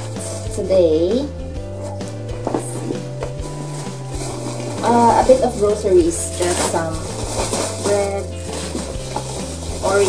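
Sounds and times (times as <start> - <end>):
background music: 0.0 - 10.0
plastic bag rustling: 1.7 - 10.0.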